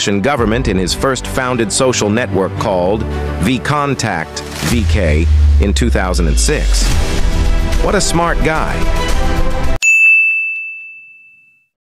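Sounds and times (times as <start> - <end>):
bright ding: 9.8 - 11.7.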